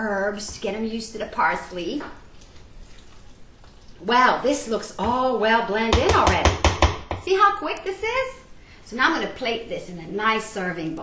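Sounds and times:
spoon stirring in saucepan: 0.2 - 6.7.

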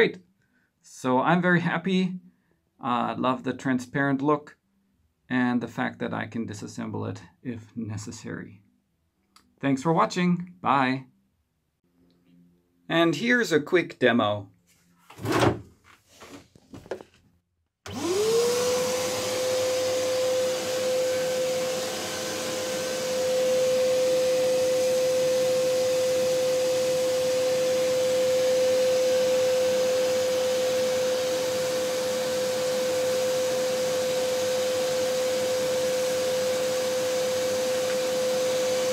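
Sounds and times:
shop vacuum motor whine: 17.9 - 38.9.

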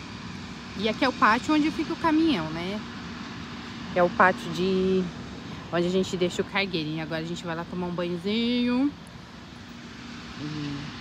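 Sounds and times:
low hum: 0.0 - 11.0
person humming briefly: 10.4 - 11.0.

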